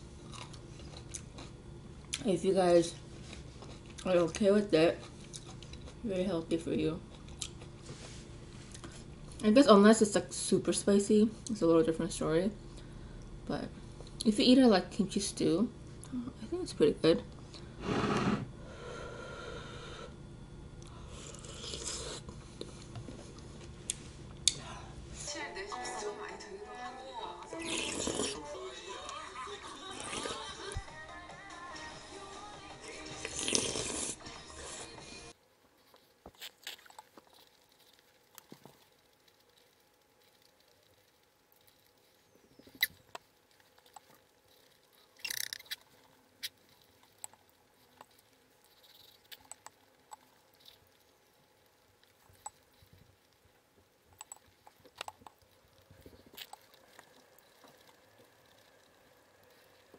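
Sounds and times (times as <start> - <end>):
person slurping stew: 17.8 - 18.5, 21.1 - 22.3, 27.6 - 28.4, 29.9 - 30.5, 33.2 - 35.0.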